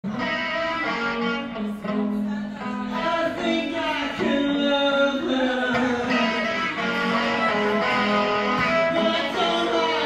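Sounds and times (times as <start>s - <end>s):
electric guitar chords: 0.0s - 10.0s.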